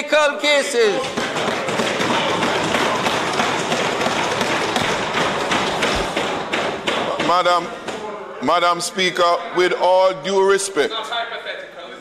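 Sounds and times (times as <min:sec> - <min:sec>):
hands thumping on wooden desks: 0:01.0 - 0:08.0.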